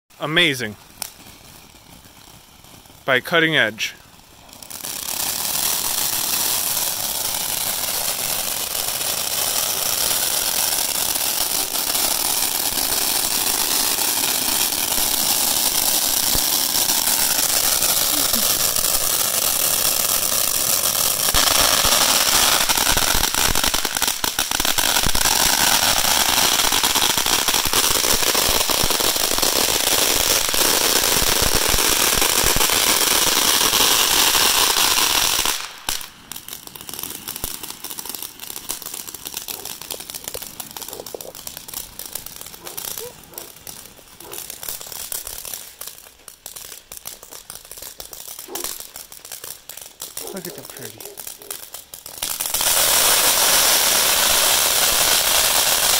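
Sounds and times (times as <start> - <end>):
firework fountain hissing and crackling: 0.2 - 55.9.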